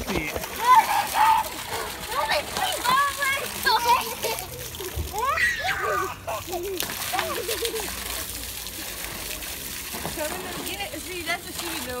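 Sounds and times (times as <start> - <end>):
water splashing in a plastic pool: 0.0 - 12.0
children calling out: 0.6 - 8.2.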